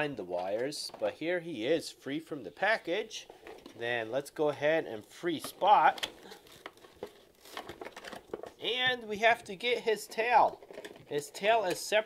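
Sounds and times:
plastic packaging crinkling: 5.0s - 11.9s.

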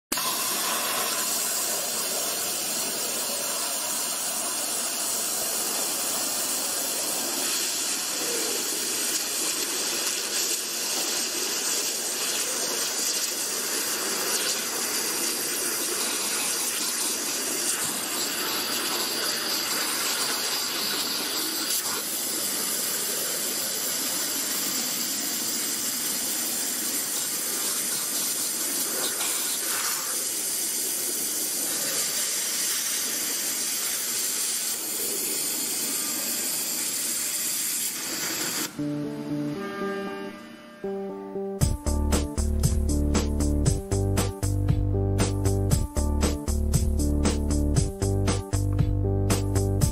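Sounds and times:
high-pressure water jet hissing: 0.1s - 38.8s.

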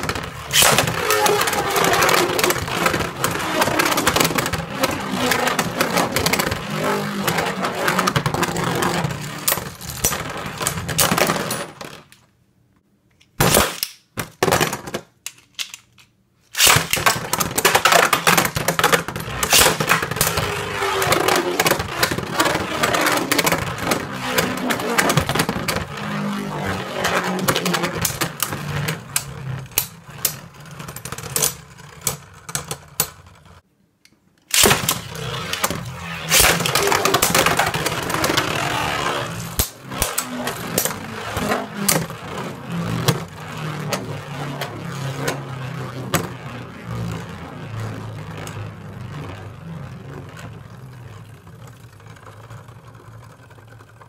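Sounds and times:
spinning tops clattering plastic: 0.0s - 12.2s, 16.6s - 33.6s, 34.5s - 48.6s.

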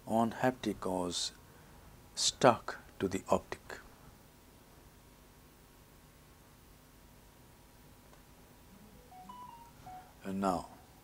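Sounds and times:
faint short electronic beeps: 8.8s - 10.3s.

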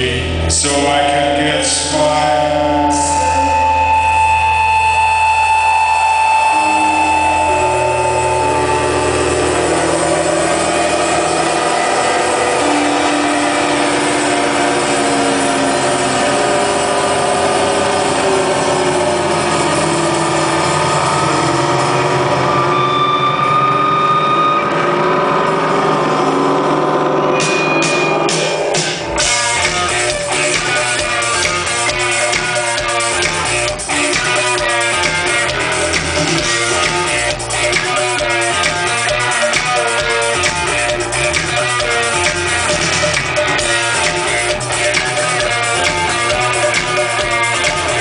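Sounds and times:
deep bass drone: 0.0s - 48.0s
distorted electric guitars droning: 0.0s - 48.0s.

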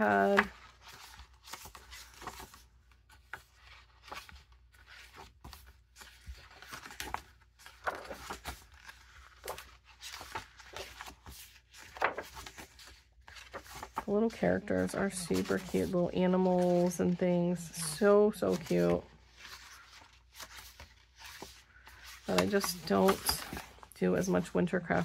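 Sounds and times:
paper pages rustling: 0.0s - 25.0s.

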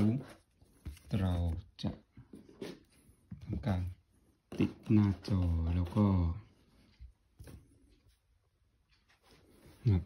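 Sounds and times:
man speaking: 0.0s - 2.1s, 3.4s - 6.5s, 9.7s - 10.0s.

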